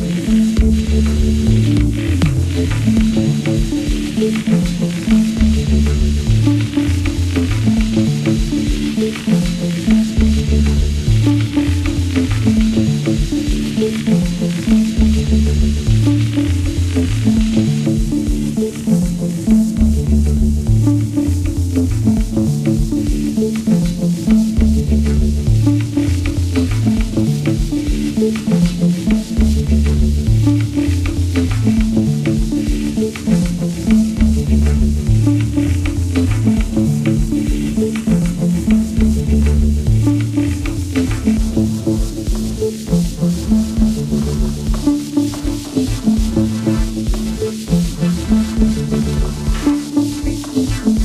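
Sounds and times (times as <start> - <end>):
hissing drum machine: 0.0 - 51.0
sequenced synth bass lines: 0.0 - 51.0.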